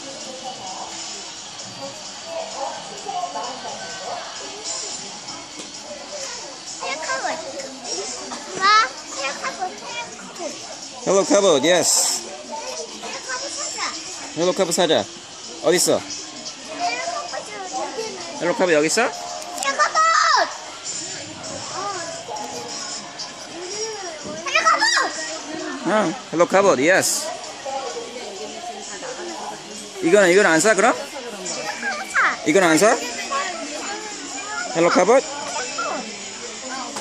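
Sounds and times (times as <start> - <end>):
children's voices: 5.4 - 10.8, 12.0 - 14.3, 16.4 - 26.0, 27.2 - 37.0.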